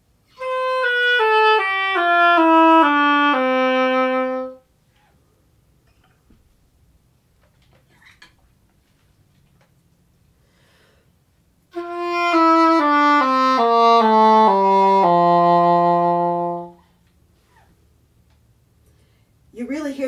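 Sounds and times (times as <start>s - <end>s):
english horn playing descending scale: 0.3s - 4.7s, 11.7s - 16.8s.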